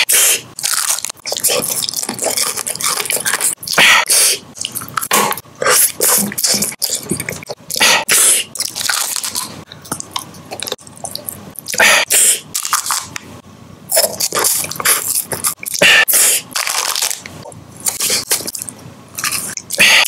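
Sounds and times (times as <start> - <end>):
crunchy candy chewing: 0.1 - 11.8, 12.4 - 13.2, 13.9 - 20.0.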